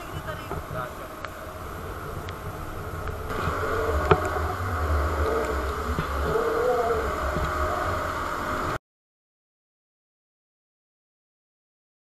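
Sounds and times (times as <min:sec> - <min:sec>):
wind buffeting microphone: 0:00.0 - 0:08.8.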